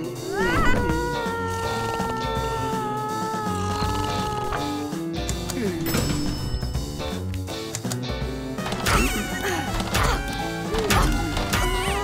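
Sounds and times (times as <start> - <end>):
soft cartoon music: 0.0 - 12.0.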